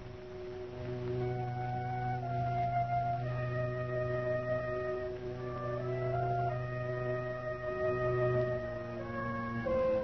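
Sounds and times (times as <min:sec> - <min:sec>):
orchestral sustained chords: 0:00.0 - 0:10.0
woodwind lines: 0:00.0 - 0:10.0.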